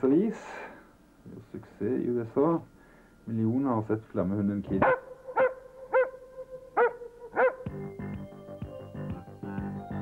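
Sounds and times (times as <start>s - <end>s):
dog barking: 4.8s - 7.7s.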